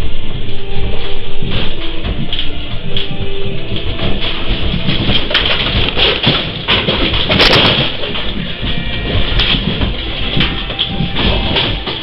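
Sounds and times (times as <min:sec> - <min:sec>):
building rattling and creaking: 0:00.0 - 0:12.0
loose objects clattering: 0:01.4 - 0:12.0.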